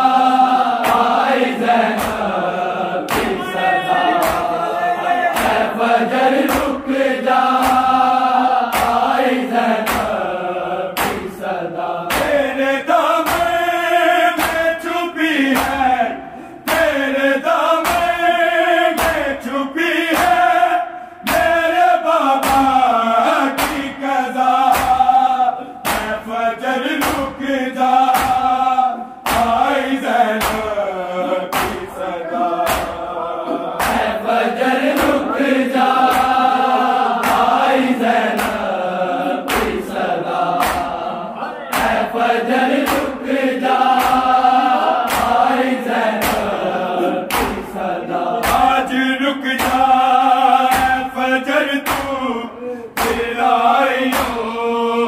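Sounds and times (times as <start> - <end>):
men chanting in unison: 0.0 - 55.0
hands slapping chests: 0.8 - 2.4, 3.0 - 3.5, 4.2 - 4.6, 5.3 - 11.4, 12.1 - 13.7, 14.3 - 16.0, 16.6 - 18.3, 18.9 - 19.4, 20.0 - 20.6, 21.2 - 25.2, 25.8 - 26.3, 26.9 - 27.4, 28.0 - 28.6, 29.2 - 30.8, 31.4 - 33.1, 33.8 - 41.1, 41.7 - 51.2, 51.8 - 52.3, 52.9 - 54.6.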